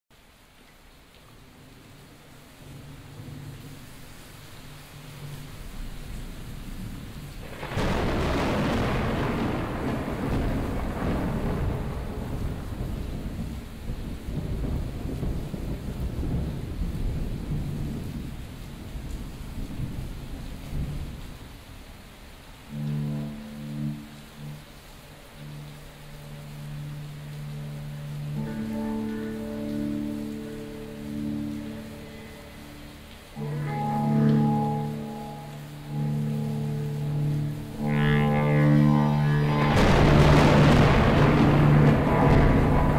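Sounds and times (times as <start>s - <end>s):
rain: 0.1s - 42.9s
thunder rumbling and crashing: 6.4s - 21.2s, 37.0s - 42.9s
low sustained instrument notes: 22.2s - 42.9s.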